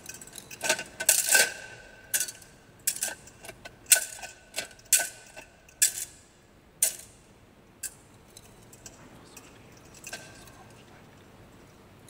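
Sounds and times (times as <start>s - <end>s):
thurible chains clinking: 7.8s - 10.6s.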